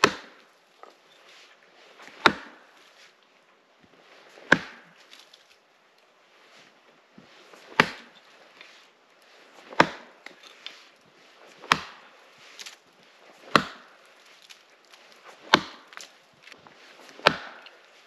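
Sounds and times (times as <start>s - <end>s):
axe chopping frozen wood: 0.0s - 0.5s, 2.1s - 2.8s, 4.3s - 5.2s, 7.6s - 8.2s, 9.6s - 10.6s, 11.5s - 16.2s, 17.0s - 17.9s.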